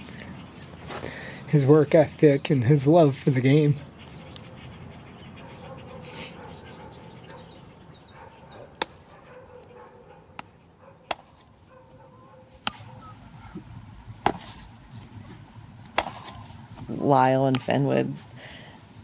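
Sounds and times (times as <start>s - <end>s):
baseball smacking into glove: 8.8s - 9.1s, 11.1s - 11.4s, 12.6s - 13.0s, 14.2s - 14.6s, 15.8s - 16.5s.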